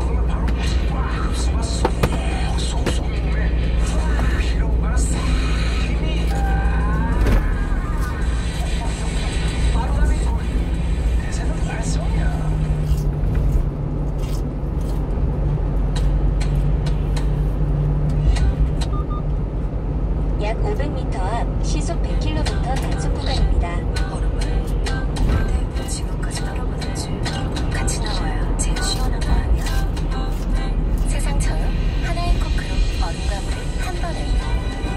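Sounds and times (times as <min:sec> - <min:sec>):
radio talk and music: 0:00.0 - 0:13.2, 0:31.1 - 0:34.9
truck engine and road rumble: 0:00.0 - 0:34.9.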